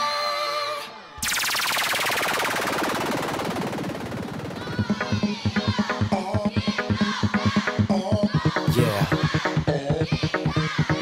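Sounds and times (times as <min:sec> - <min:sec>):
electronic dance music: 0:01.2 - 0:11.0.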